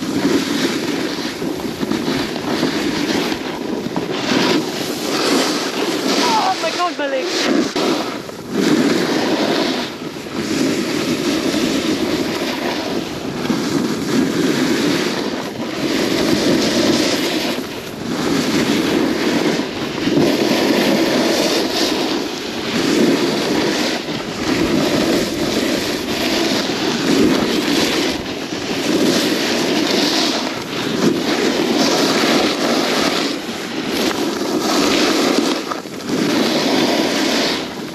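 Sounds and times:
skis scraping on packed snow: 0.0 - 37.9
wind buffeting microphone: 0.0 - 37.9.

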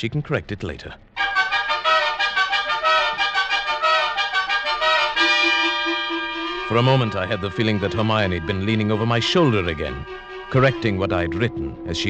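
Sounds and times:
trumpets playing brass music: 1.2 - 12.0.

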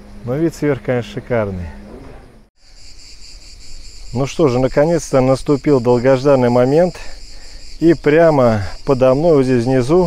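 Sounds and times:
insects pulsing chorus: 0.0 - 10.0.

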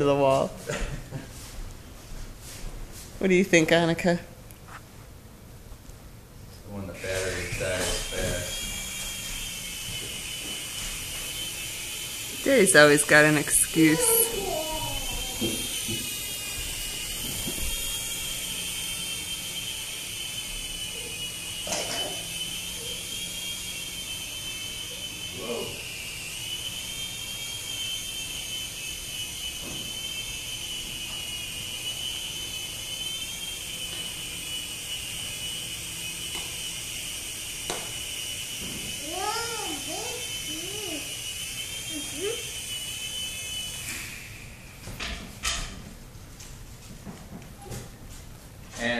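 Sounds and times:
toy airplane motor whine: 6.8 - 45.7.

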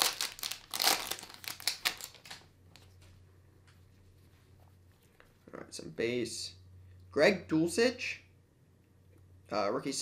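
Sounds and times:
foil wrapper crinkling: 0.0 - 2.4.

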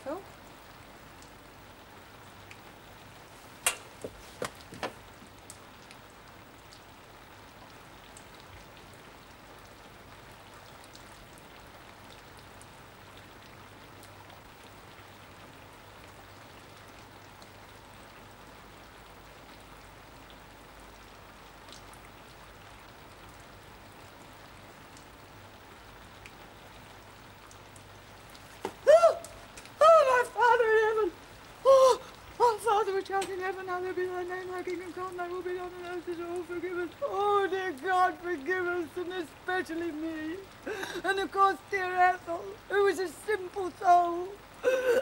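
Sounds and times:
pouring rain: 0.0 - 45.0.

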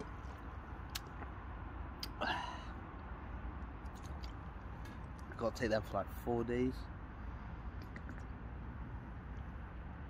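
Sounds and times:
swallowing water: 7.8 - 8.3.

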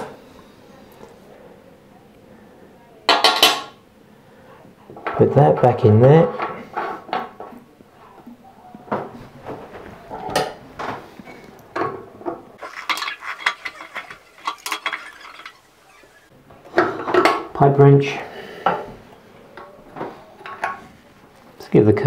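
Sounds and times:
metal tool clinking on tap parts: 12.6 - 16.2.

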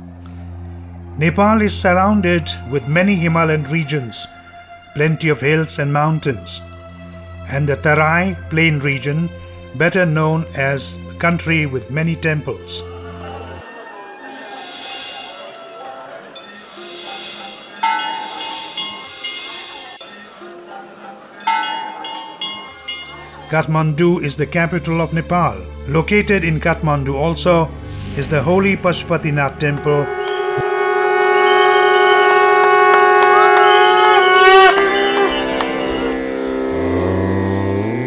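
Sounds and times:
soft sustained background music: 0.0 - 38.0
metal bell struck and ringing: 17.8 - 20.3, 21.4 - 23.3
conch shells blown: 29.5 - 38.0.

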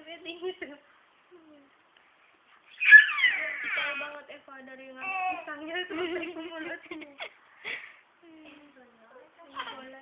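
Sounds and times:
baby fussing: 2.7 - 4.1
baby squealing cry: 2.7 - 4.1.

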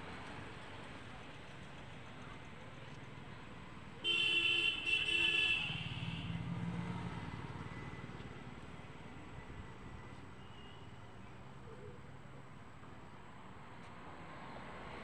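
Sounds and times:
vehicle horn blasts: 4.0 - 6.4.

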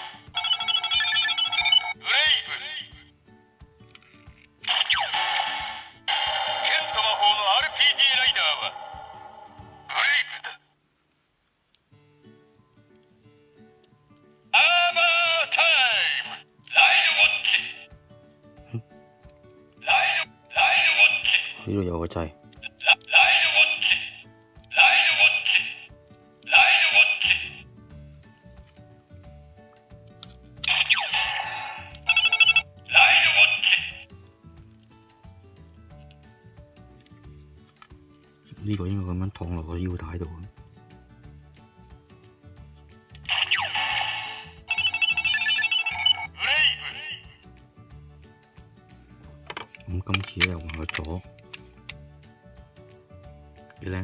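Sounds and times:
toy electronic sound effects: 0.0 - 2.8, 4.6 - 9.1, 14.6 - 17.9, 19.8 - 21.6, 22.7 - 25.9, 26.5 - 27.6, 30.6 - 34.0, 43.2 - 47.3
toy voice calls: 0.0 - 3.0, 4.7 - 9.1, 9.9 - 10.6, 14.6 - 17.9, 19.8 - 21.6, 22.7 - 25.9, 26.5 - 27.6, 30.6 - 34.0, 43.3 - 47.4.

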